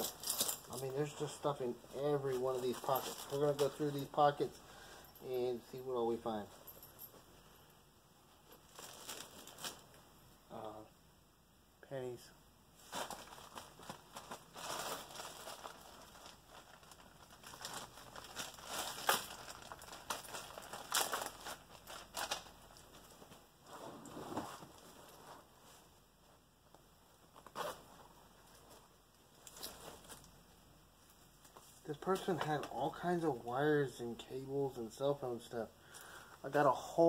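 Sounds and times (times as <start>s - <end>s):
fabric rustling and crinkling: 0.0s - 5.2s, 8.3s - 10.1s, 12.8s - 32.9s.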